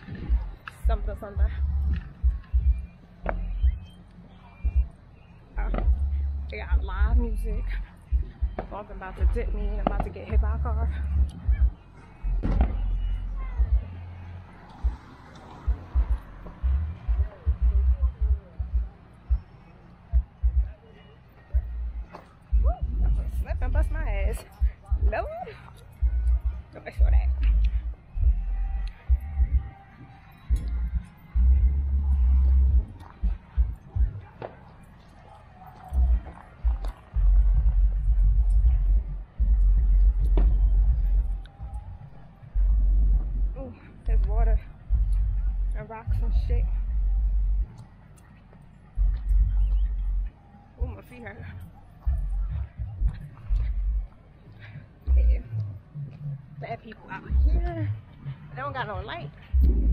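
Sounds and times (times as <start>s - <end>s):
wind buffeting microphone: 0.0s - 20.8s, 21.4s - 59.9s.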